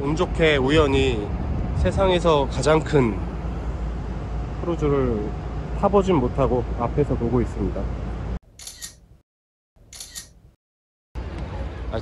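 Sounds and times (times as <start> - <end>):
high-pitched double clicks: 8.6 - 9.0, 9.9 - 10.4.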